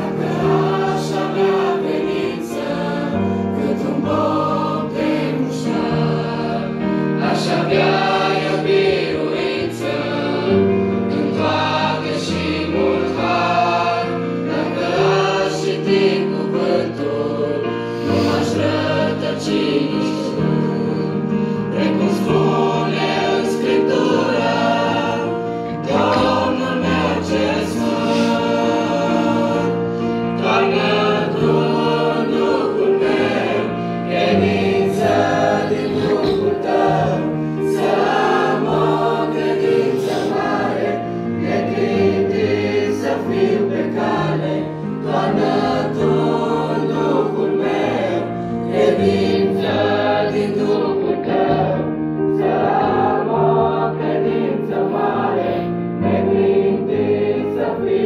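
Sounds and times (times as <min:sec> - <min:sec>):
youth choir singing a hymn: 0:00.0 - 0:58.0.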